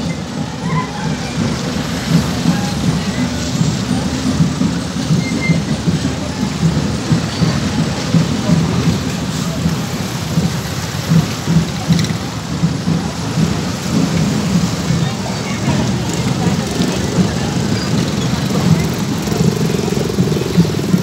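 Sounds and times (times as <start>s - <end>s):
outdoor street noise rumble: 0.0s - 21.0s.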